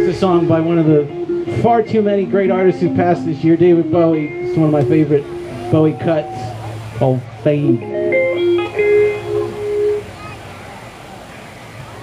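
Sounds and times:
electric guitar note ringing: 0:00.0 - 0:10.1
murmur of audience voices: 0:00.0 - 0:12.0.

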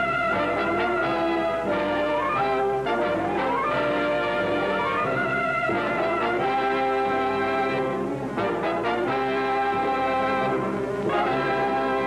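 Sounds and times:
orchestral music led by brass: 0:00.0 - 0:12.0.

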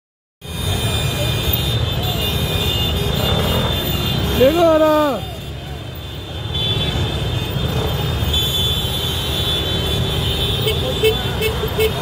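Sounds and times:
scooter engines rumbling: 0:00.4 - 0:12.0
street traffic: 0:00.4 - 0:12.0.

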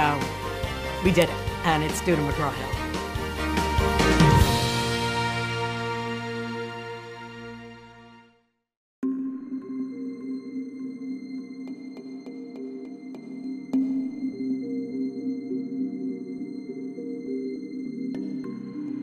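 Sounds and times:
ambient music with low notes: 0:00.0 - 0:08.3, 0:09.0 - 0:19.0.

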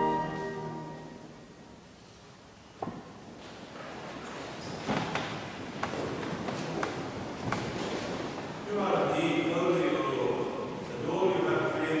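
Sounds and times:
wooden knocks from pews: 0:04.8 - 0:08.4.

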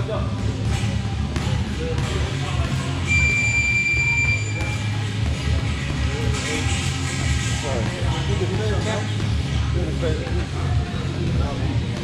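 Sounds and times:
high electronic timer beep: 0:03.1 - 0:04.9.

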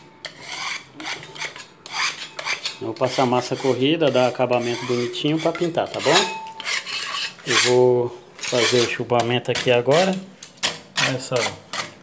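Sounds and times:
putty knife scraping paint: 0:00.2 - 0:07.8, 0:08.4 - 0:12.0.

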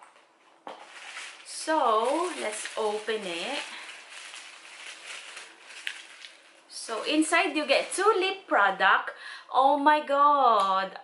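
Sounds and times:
pouch rustling: 0:00.7 - 0:08.0.

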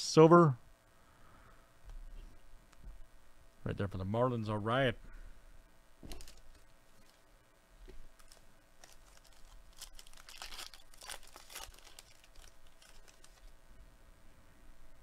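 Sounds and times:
foil pack tearing and crinkling: 0:06.1 - 0:07.2, 0:08.2 - 0:13.5.

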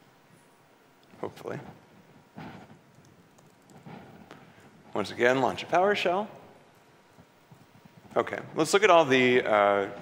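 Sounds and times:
laptop keyboard keystrokes: 0:02.9 - 0:03.8.

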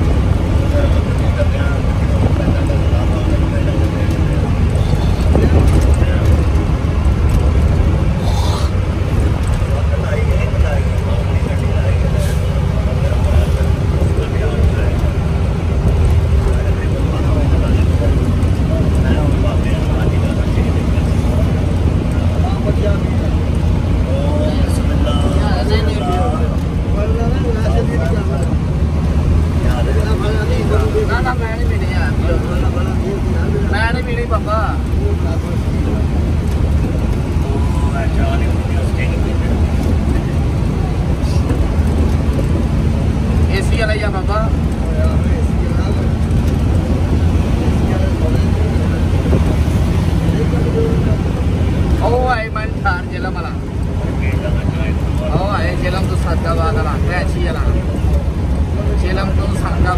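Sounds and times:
bus engine and road noise: 0:00.0 - 0:59.9.

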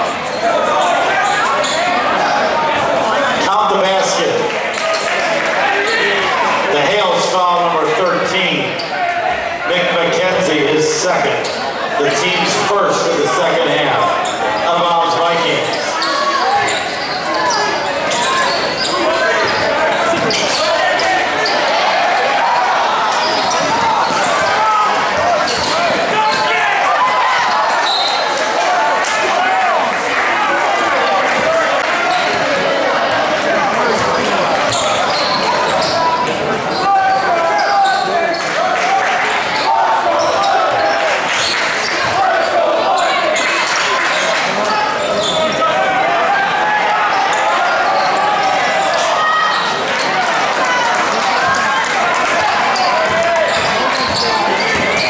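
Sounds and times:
echoing babble of voices: 0:00.0 - 0:55.0.

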